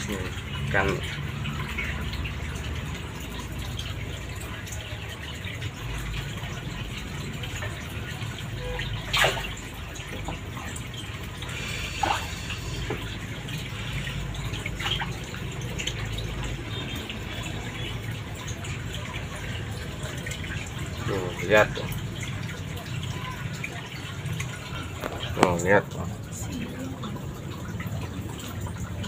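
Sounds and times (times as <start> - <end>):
aquarium filter water trickling: 0.0 - 29.0.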